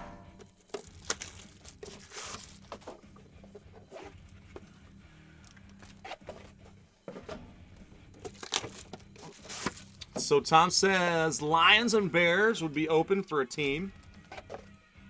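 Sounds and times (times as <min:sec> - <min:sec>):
plastic wrap tearing and rustling: 0:00.5 - 0:02.9, 0:08.3 - 0:10.0.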